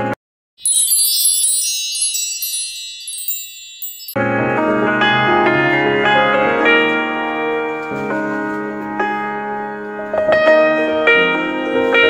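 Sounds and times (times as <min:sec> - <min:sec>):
bright tinkling chimes: 0:00.6 - 0:04.2.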